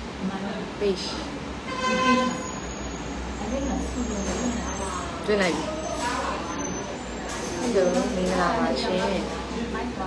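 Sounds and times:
vehicle horn honk: 1.7s - 2.6s.

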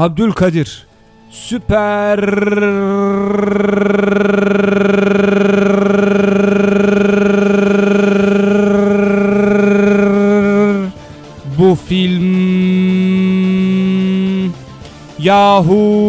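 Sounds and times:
man holding long vocal note: 1.6s - 11.0s, 12.0s - 14.6s.

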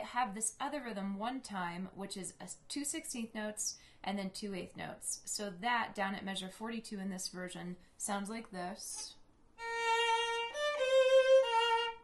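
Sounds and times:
solo violin bowed: 9.6s - 12.0s.

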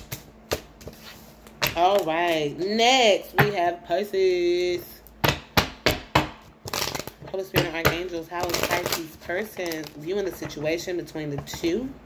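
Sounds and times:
cards rustling: 8.3s - 10.7s.

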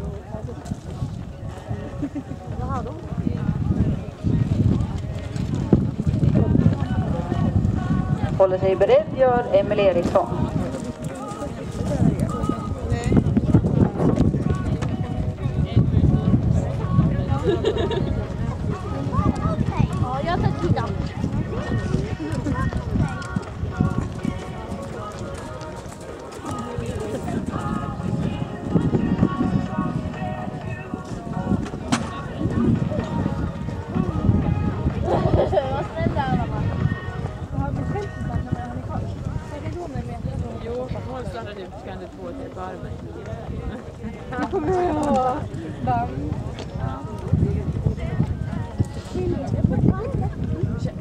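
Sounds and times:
horse hoofbeats on sand: 0.0s - 17.2s, 18.1s - 35.2s
voices talking: 0.0s - 51.0s.

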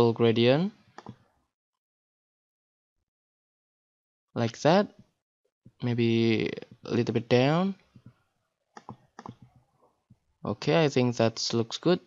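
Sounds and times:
faint computer mouse clicks: 1.0s - 1.2s, 8.8s - 9.5s.

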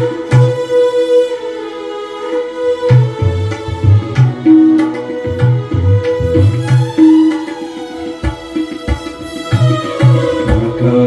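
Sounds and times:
tabla strokes: 0.0s - 1.4s, 2.3s - 11.0s.

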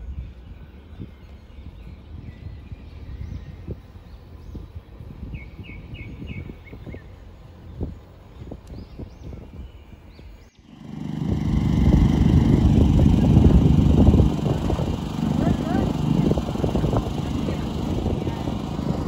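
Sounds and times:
low outdoor rumble: 0.0s - 19.0s
small birds chirping: 0.0s - 19.0s
wind buffeting microphone: 0.0s - 19.0s.

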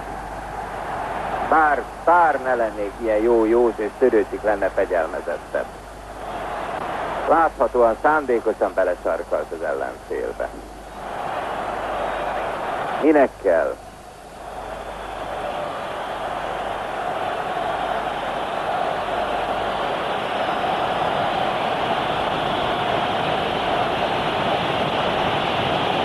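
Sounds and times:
stadium crowd voices: 0.0s - 26.0s.

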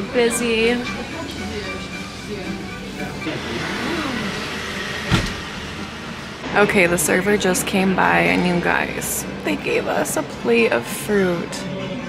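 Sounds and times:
faint voices: 0.0s - 12.0s
car passing: 1.0s - 10.4s.

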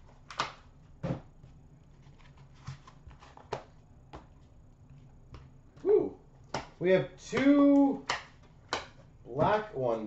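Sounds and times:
person humming mm: 5.8s - 6.2s.

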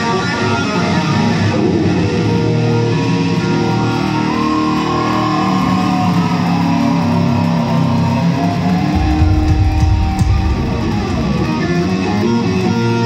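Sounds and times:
electric guitar solo: 0.0s - 13.0s
heavy low note: 9.0s - 12.5s.

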